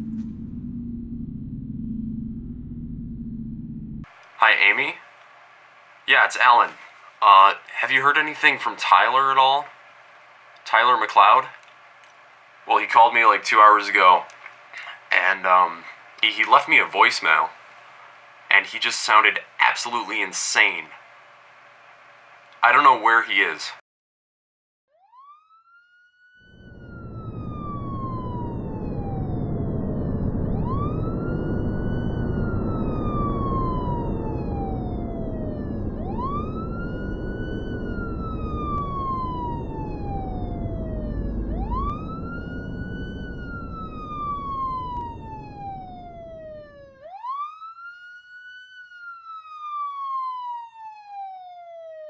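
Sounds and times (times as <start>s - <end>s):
loud low rumble: 0.0s - 4.8s, 26.5s - 46.8s
wailing siren: 0.0s - 23.0s, 24.9s - 52.0s.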